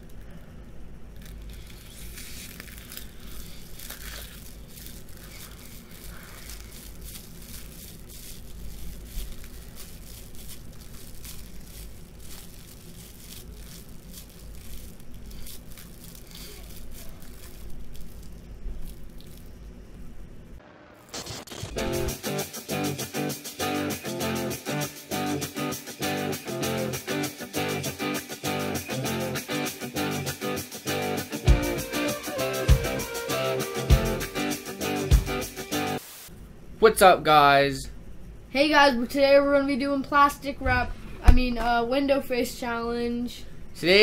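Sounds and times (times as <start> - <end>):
plastic film crinkling: 1.0 - 19.6.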